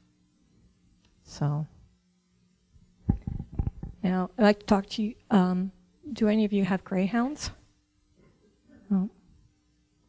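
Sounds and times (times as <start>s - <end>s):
microphone handling bumps: 3.0s - 4.0s.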